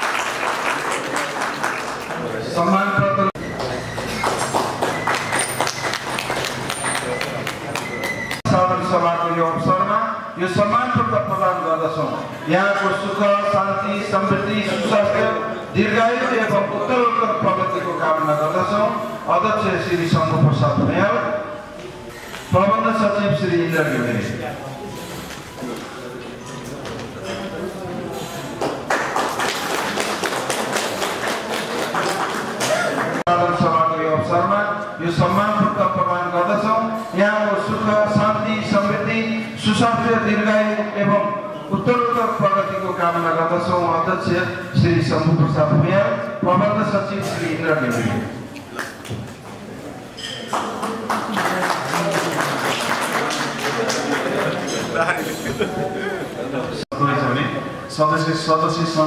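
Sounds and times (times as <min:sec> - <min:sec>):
audience clapping: 0:00.0 - 0:02.6, 0:03.4 - 0:08.5, 0:28.5 - 0:33.3, 0:50.5 - 0:54.8.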